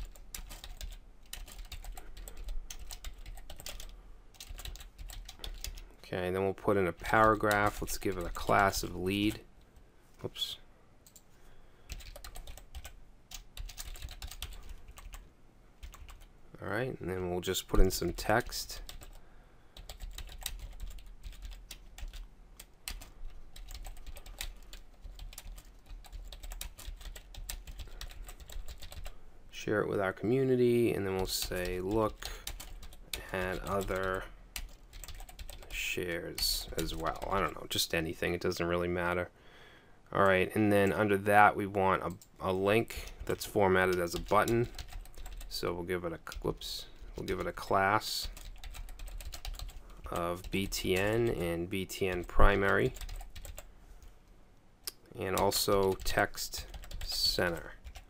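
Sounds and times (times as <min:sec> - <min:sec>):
computer keyboard typing: 0:00.0 - 0:05.8, 0:11.9 - 0:15.2, 0:15.8 - 0:16.3, 0:18.8 - 0:19.2, 0:19.8 - 0:22.2, 0:22.8 - 0:29.2, 0:31.2 - 0:35.7, 0:43.1 - 0:45.5, 0:48.2 - 0:51.1, 0:52.1 - 0:53.7, 0:55.4 - 0:58.0
low steady hum: 0:00.0 - 0:58.0.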